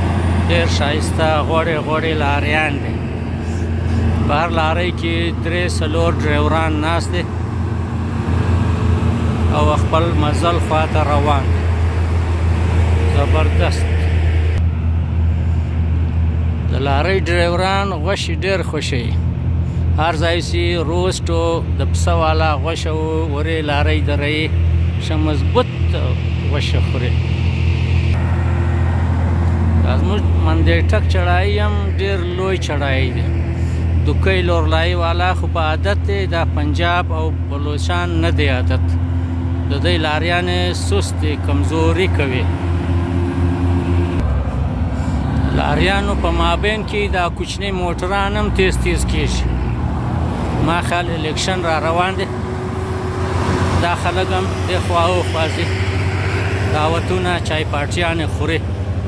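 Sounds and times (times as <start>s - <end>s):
heavy truck engines droning: 0.0s - 59.0s
road noise: 0.0s - 59.0s
man speaking: 0.5s - 3.0s, 4.2s - 7.3s, 9.5s - 11.7s, 13.0s - 14.2s, 20.0s - 27.2s, 29.8s - 33.4s, 34.0s - 39.0s, 39.7s - 42.5s, 45.4s - 49.8s, 50.6s - 52.4s, 53.8s - 55.8s, 56.6s - 58.6s.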